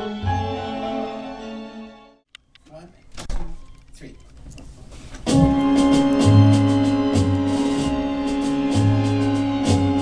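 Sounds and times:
orchestral music: 0.0s - 2.3s, 5.3s - 10.0s.

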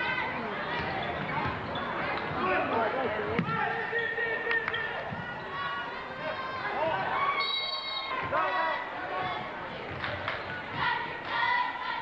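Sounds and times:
crowd chatter and shouting: 0.0s - 12.0s.

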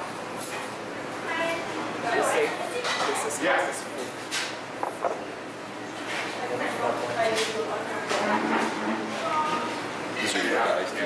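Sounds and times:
restaurant background noise: 0.0s - 11.0s.

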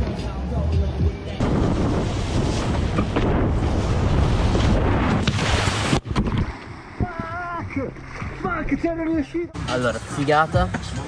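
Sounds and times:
wind over camera: 1.4s - 7.4s
faint background music: 7.5s - 11.0s.

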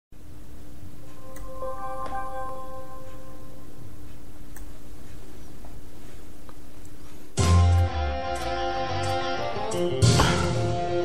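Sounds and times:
guitar notes plucked: 7.4s - 11.0s.

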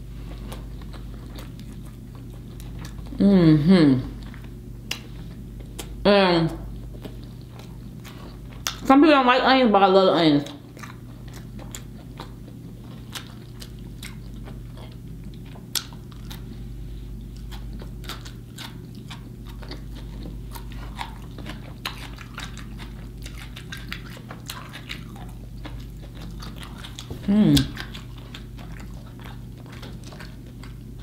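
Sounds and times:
chewing raw onion: 0.0s - 9.0s, 10.4s - 31.0s
steady low hum: 0.0s - 31.0s.

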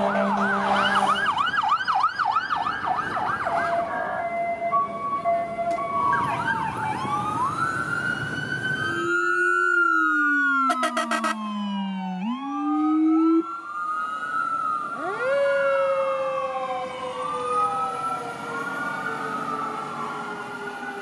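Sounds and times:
siren wailing: 0.0s - 21.0s
siren winding down: 0.0s - 21.0s
siren yelp: 0.0s - 21.0s
traffic rumble: 0.0s - 21.0s.

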